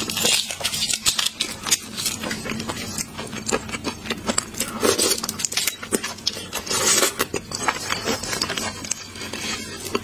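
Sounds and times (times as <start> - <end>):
wet chewing and sucking sounds: 0.0 - 10.0.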